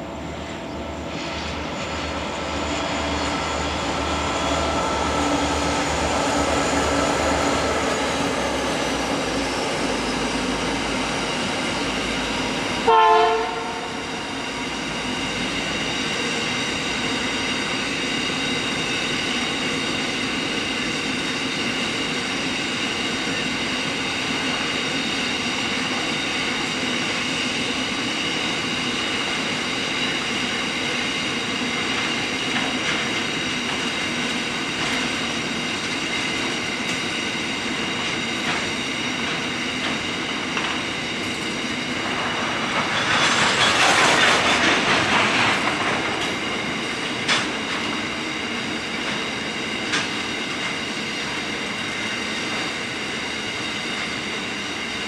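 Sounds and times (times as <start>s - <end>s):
high ringing wheels on rails: 0.0s - 55.0s
train wagons rolling past: 27.2s - 55.0s.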